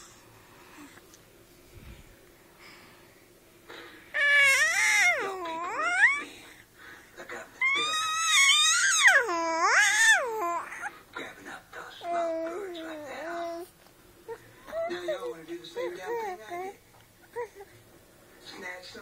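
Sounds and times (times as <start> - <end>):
toddler whiny crying: 4.2 - 6.3, 7.6 - 10.9.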